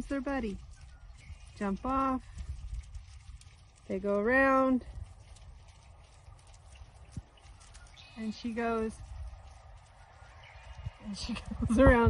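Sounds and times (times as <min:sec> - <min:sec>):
birds chirping: 0:00.0 - 0:03.2, 0:05.4 - 0:12.0
low rumble: 0:00.0 - 0:12.0.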